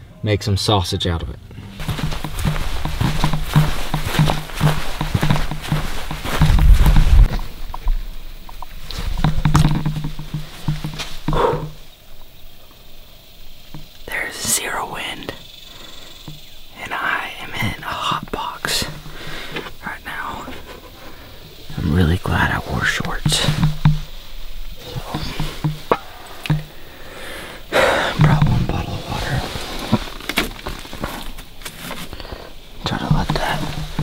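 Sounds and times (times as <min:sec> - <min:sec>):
footsteps over dry grass: 0:01.7 - 0:14.9, 0:15.7 - 0:34.0
man breathing heavily: 0:19.0 - 0:19.7, 0:26.0 - 0:28.2, 0:32.0 - 0:32.7.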